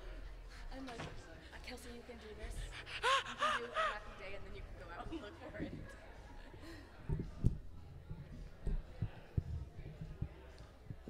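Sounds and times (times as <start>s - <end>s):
woman laughing: 2.8s - 4.3s.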